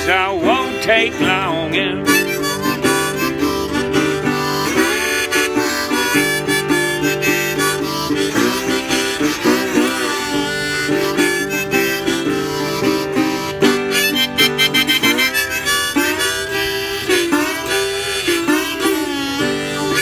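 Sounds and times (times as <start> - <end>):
harmonica blues solo: 0.0 - 20.0
slide guitar picking: 0.0 - 20.0.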